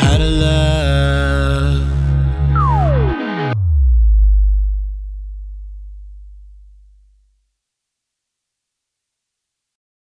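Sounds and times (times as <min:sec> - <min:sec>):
deep electronic bass tone: 0:00.0 - 0:07.4.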